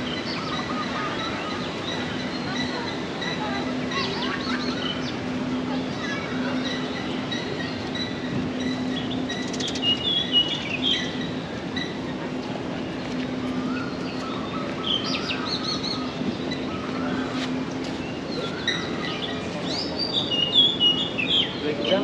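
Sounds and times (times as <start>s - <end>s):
birds chirping and warbling: 0.0s - 22.0s
distant city noise: 0.0s - 22.0s
steady low hum: 0.0s - 22.0s.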